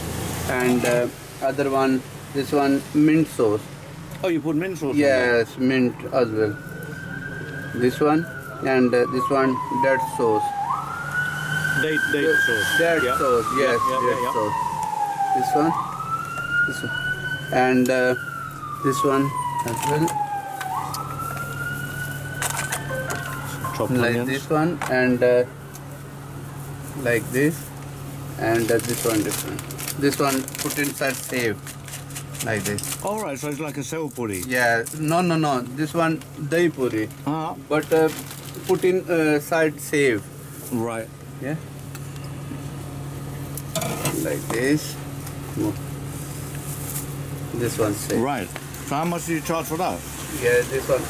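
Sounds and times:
emergency siren wailing: 0:05.2 - 0:27.6
person speaking: 0:22.8 - 0:25.4.

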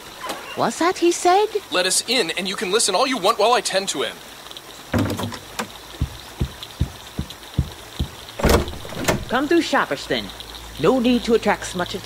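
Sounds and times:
footsteps low thuds: 0:04.9 - 0:09.4.

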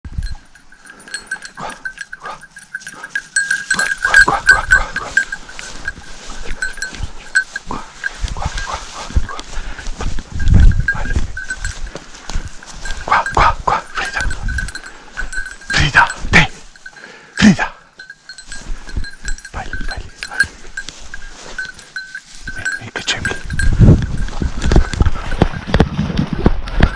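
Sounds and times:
dog collar bell ringing: 0:00.0 - 0:25.9
rumble of movement: 0:00.2 - 0:13.1, 0:13.8 - 0:17.0
hunting dogs barking and yelping: 0:00.3 - 0:25.7.

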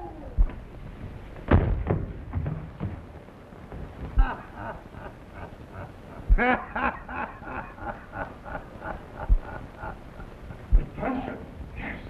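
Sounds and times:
man laughing: 0:04.2 - 0:10.4.

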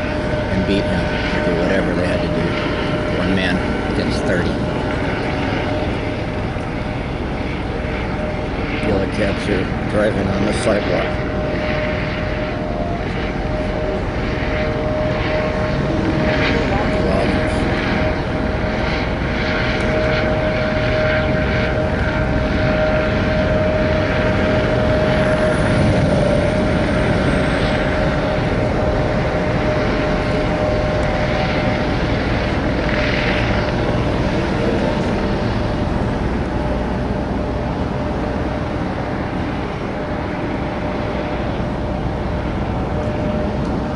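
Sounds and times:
helicopter drone: 0:00.0 - 0:43.9
faint voices: 0:16.1 - 0:18.0.

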